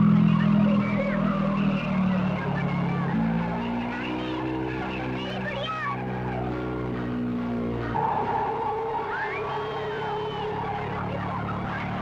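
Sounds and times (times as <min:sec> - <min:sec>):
tyres skidding: 0:00.0 - 0:12.0
vehicle driving: 0:00.0 - 0:12.0.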